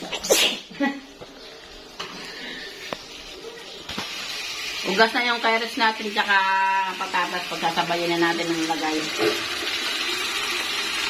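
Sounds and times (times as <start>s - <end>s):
person sneezing: 0.0s - 0.9s.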